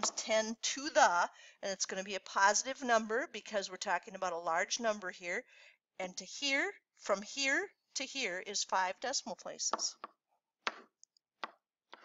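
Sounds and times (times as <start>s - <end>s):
stylus tapping on tablet: 9.7s - 12.0s.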